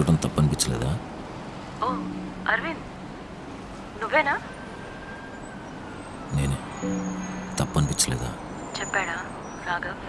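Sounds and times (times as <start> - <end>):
man speaking on phone call: 0.0 - 1.1, 6.3 - 6.8, 7.6 - 8.5.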